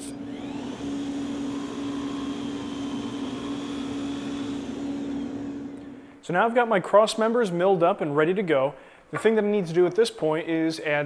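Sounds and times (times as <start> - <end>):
dust extraction air rush: 0.0 - 6.2
milling machine hum: 0.0 - 6.2.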